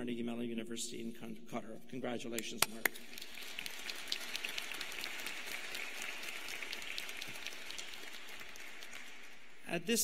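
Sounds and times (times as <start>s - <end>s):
audience applause: 3.0s - 9.5s.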